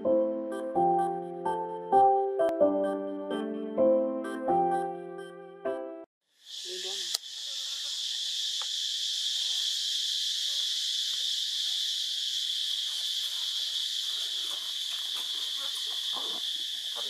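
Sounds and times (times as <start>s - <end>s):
high-pitched insect chorus: 6.3s - 17.0s.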